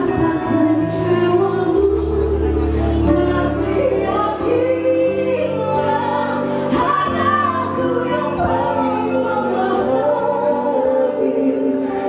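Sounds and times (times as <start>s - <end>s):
woman singing ballad: 0.0s - 12.0s.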